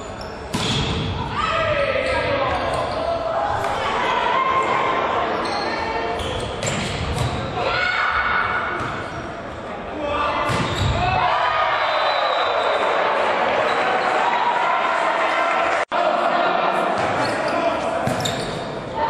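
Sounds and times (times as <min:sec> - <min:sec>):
crowd shouting and cheering: 0:03.2 - 0:06.2, 0:09.8 - 0:19.0.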